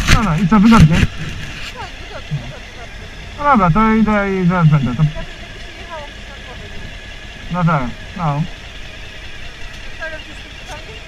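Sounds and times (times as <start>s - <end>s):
faint voices: 0.0s - 8.6s, 9.4s - 11.0s
motorcycle engine idling: 0.0s - 11.0s.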